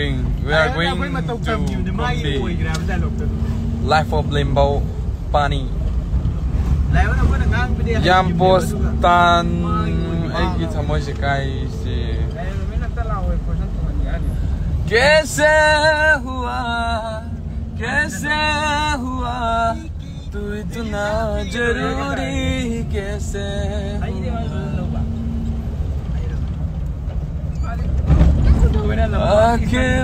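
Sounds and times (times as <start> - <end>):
car engine and road noise: 0.0 - 30.0.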